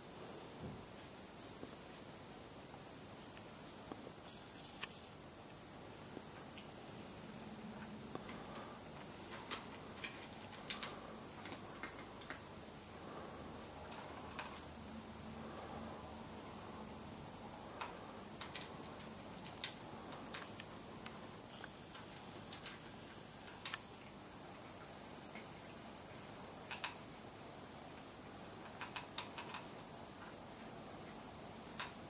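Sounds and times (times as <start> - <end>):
faint steady hiss: 0.0 - 32.0
cat chewing dry kibble: 7.6 - 14.7, 17.6 - 27.0.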